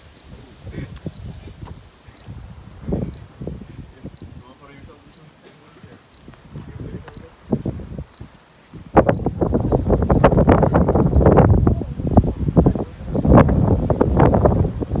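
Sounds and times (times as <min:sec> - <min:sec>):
gusty wind buffeting microphone: 0:00.0 - 0:05.1, 0:05.9 - 0:15.0.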